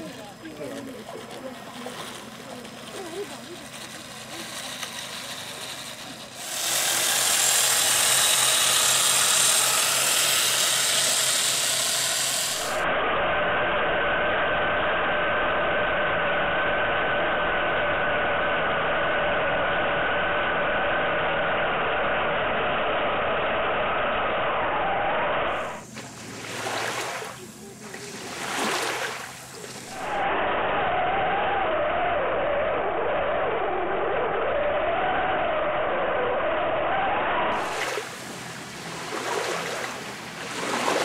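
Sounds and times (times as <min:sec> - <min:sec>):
electric motor whining: 0:00.0 - 0:13.3, 0:15.7 - 0:41.0.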